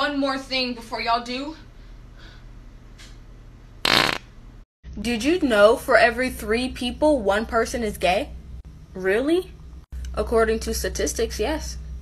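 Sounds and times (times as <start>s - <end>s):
fart sound: 3.8s - 4.4s.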